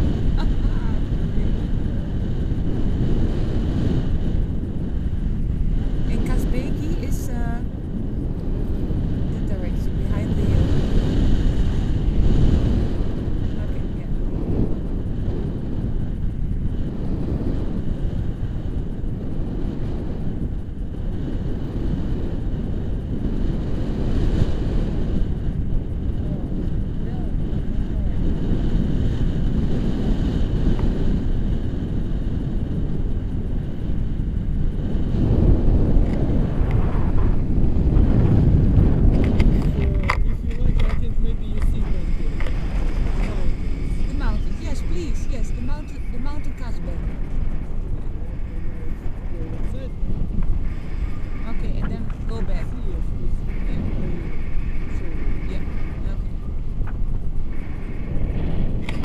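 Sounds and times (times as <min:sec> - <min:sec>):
wind rushing over microphone: 0:00.0 - 0:59.0.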